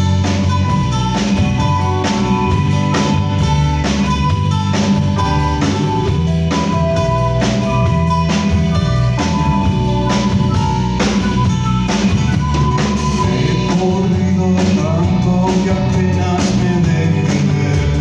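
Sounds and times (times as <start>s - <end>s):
flute melody: 0.0s - 14.0s
bass guitar: 0.0s - 18.0s
drum kit beat: 0.0s - 18.0s
electric guitar: 0.0s - 18.0s.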